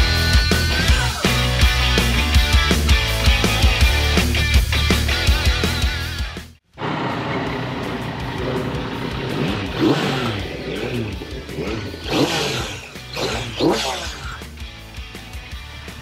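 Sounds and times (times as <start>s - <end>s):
motorcycle engine revving: 6.7s - 16.0s.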